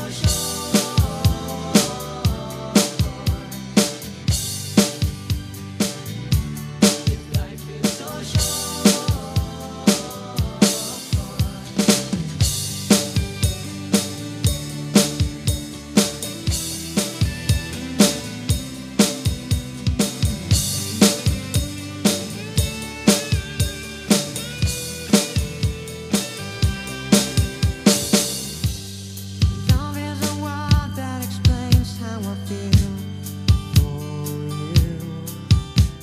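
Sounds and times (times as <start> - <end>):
electronic drum kit backbeat: 0.0 - 36.0
instrumental backing music: 0.0 - 36.0.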